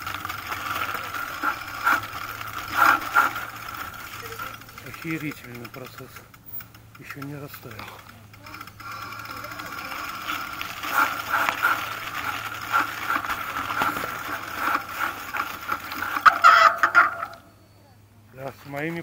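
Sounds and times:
bicycle rattling over rough ground: 0:00.0 - 0:17.7, 0:18.3 - 0:19.0.

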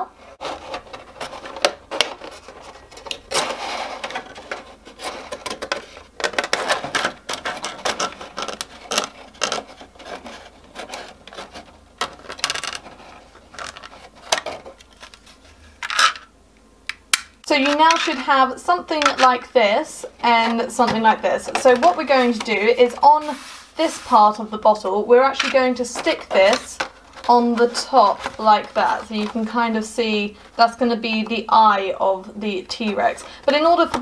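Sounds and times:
plastic crackling and flexing: 0:00.0 - 0:16.3.

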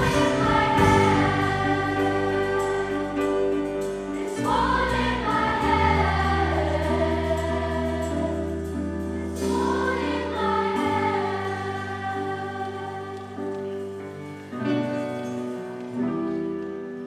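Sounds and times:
choir singing: 0:00.0 - 0:14.0
piano and guitar accompaniment: 0:00.0 - 0:17.0.

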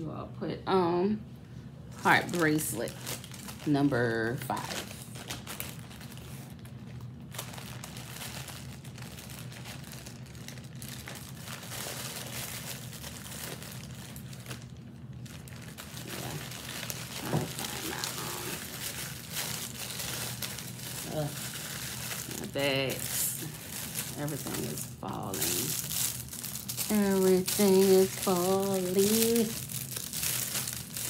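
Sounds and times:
plastic bags crinkling: 0:01.9 - 0:31.0.

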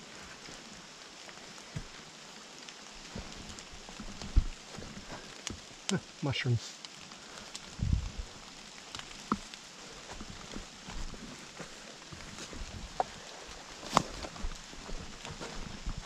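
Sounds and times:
footsteps on fallen leaves: 0:07.6 - 0:16.0.

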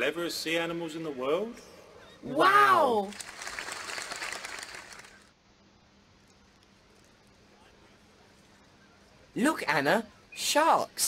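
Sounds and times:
audience clapping: 0:02.9 - 0:05.3.

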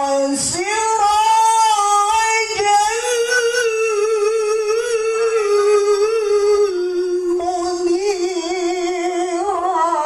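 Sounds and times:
man reciting melodically: 0:00.0 - 0:10.0.

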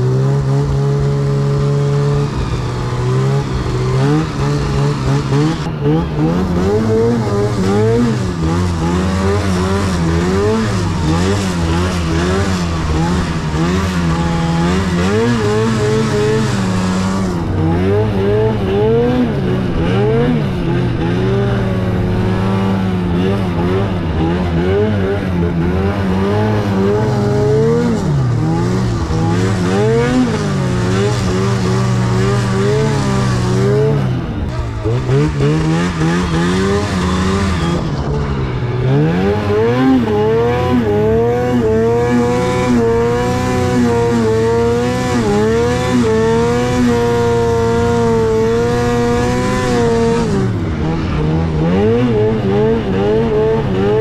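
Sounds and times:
snowmobile engine revving: 0:00.0 - 0:54.0.

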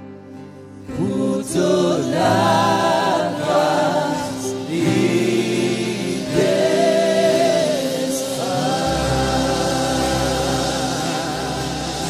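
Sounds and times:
worship band playing: 0:00.0 - 0:12.0
singers holding long notes: 0:00.7 - 0:12.0.

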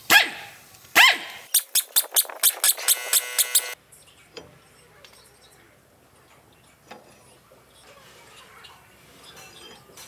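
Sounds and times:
dog barking: 0:00.1 - 0:01.4
pneumatic impact wrench hammering: 0:01.5 - 0:03.8.

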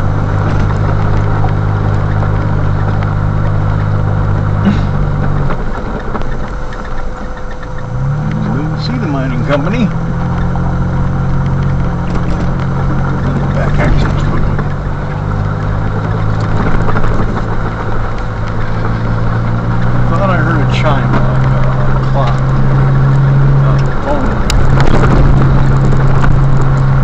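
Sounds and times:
car engine droning: 0:00.0 - 0:27.0
tyres on gravel road: 0:00.0 - 0:27.0.

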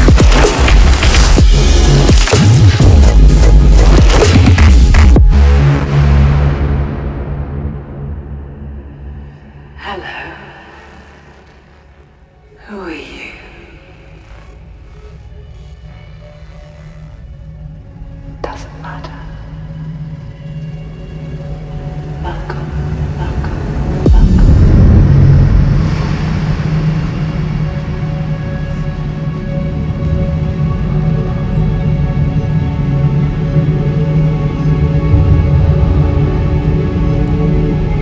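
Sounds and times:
dark electronic track bass: 0:00.0 - 0:38.0.

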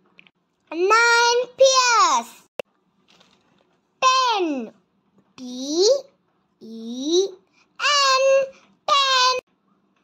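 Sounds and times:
child counting aloud: 0:00.7 - 0:02.4, 0:04.0 - 0:04.7, 0:05.4 - 0:09.5.

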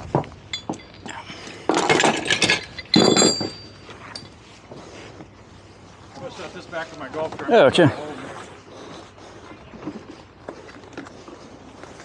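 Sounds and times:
metallic clinking and clattering: 0:01.7 - 0:04.4.

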